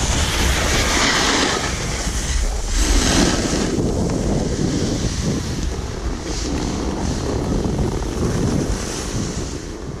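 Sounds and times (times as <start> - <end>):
snowboard hissing on snow: 0.0 - 10.0
wind buffeting microphone: 0.0 - 10.0.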